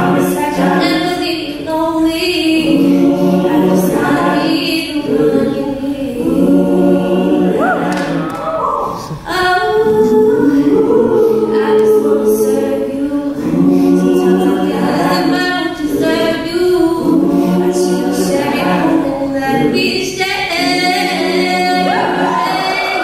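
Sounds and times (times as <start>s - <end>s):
a cappella group singing harmony: 0.0s - 23.0s.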